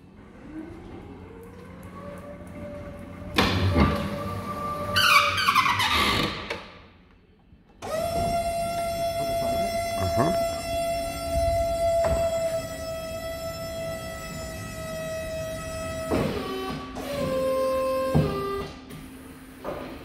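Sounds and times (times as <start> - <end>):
electric forklift motor whine: 7.8 - 20.0
hydraulic lift high whine: 7.8 - 20.0.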